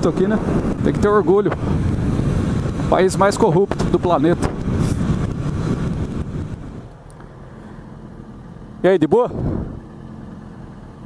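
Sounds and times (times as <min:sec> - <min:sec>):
wind on microphone: 0:00.1 - 0:06.9, 0:09.3 - 0:09.9.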